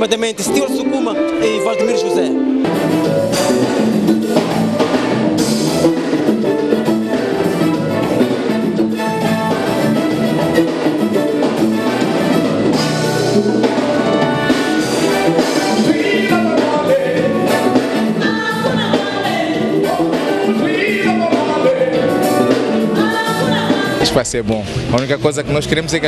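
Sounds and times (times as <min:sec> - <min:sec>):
drum kit and percussion: 0:00.0 - 0:26.0
person singing: 0:15.1 - 0:24.2.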